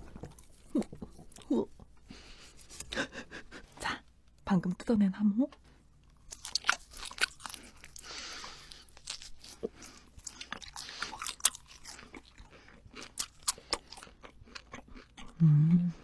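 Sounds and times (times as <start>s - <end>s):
chewing mouth sounds: 6.3s - 16.0s.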